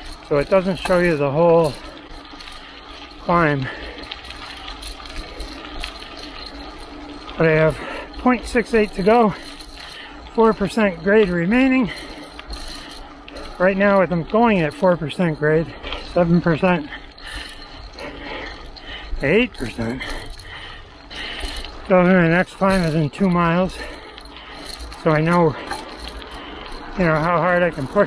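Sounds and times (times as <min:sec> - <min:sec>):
bicycle rolling on pavement: 0:00.0 - 0:28.0
light clicks and rattles: 0:00.0 - 0:28.0
tyres and wind rumble: 0:00.0 - 0:28.0.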